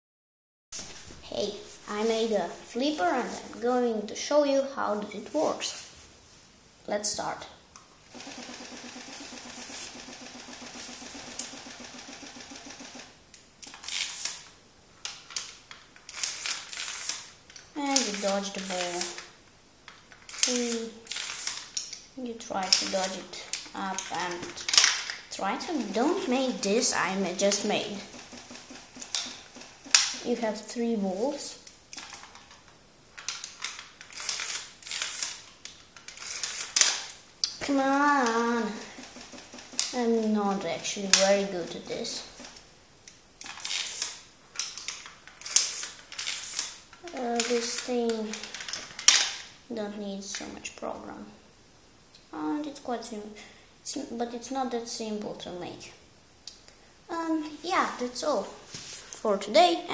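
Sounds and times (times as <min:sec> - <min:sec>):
pinball flipper clicks and clacks: 0:08.2 - 0:13.1.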